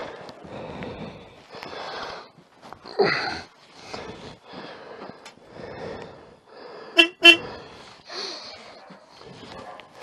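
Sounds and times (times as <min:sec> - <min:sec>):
motorcycle horn toots: 0:07.0 - 0:07.5.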